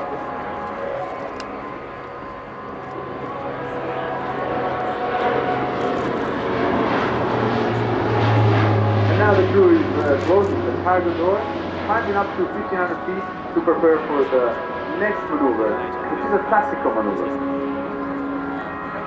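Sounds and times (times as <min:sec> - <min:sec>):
turboprop plane droning overhead: 0:00.0 - 0:19.0.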